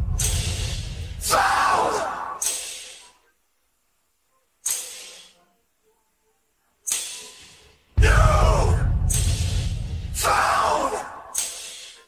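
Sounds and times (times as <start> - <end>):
crash cymbal hit: 0.0 - 1.2, 8.0 - 10.3.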